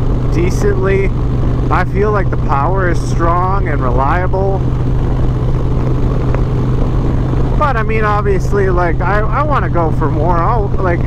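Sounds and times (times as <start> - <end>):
motorcycle engine drone: 0.0 - 11.0
road noise: 0.0 - 11.0.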